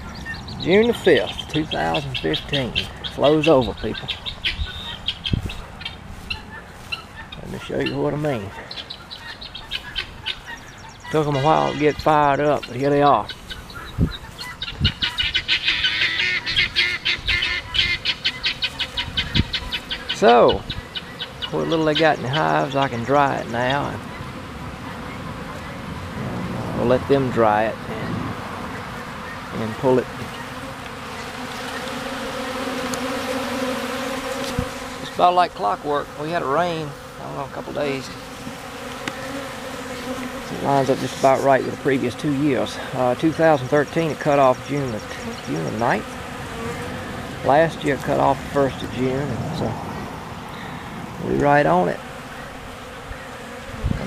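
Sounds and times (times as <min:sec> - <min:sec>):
birds chirping: 0:00.0 - 0:54.0
honey bees buzzing: 0:00.0 - 0:54.0.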